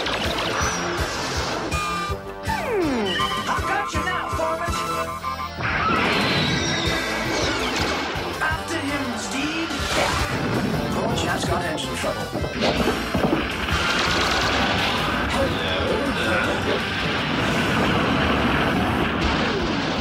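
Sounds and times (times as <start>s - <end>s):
cartoon action music: 0.0s - 20.0s
crash and explosion effects: 5.6s - 8.4s, 12.6s - 20.0s.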